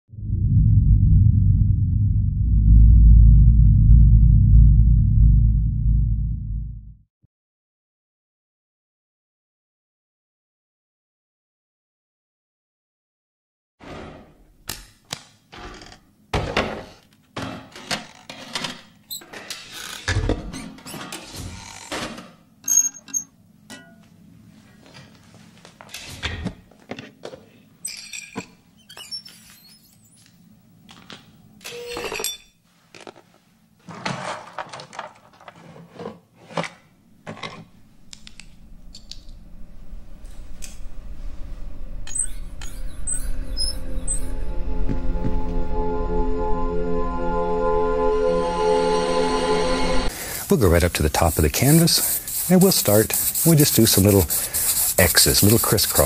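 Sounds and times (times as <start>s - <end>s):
low rumble: 0.1s - 7.1s, 37.8s - 47.9s
crackly handling noises: 32.8s - 39.3s.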